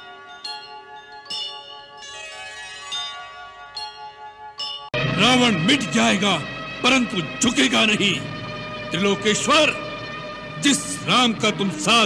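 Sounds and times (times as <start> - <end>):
bell-like chimes: 0.0 - 12.0
held synth tones: 5.0 - 12.0.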